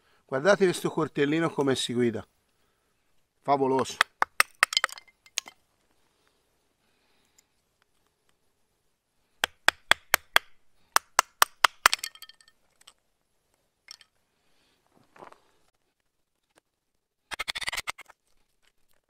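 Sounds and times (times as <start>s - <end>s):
knife splitting dry sticks: 9.4s - 12.1s.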